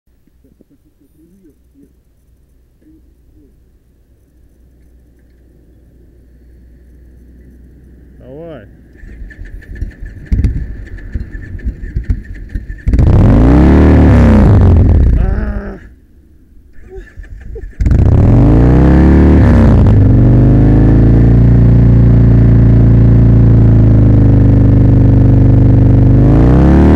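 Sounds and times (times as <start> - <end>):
motorcycle engine revving and idling: 6.8 - 15.9, 16.7 - 26.9
electric starter cranking: 8.9 - 13.4.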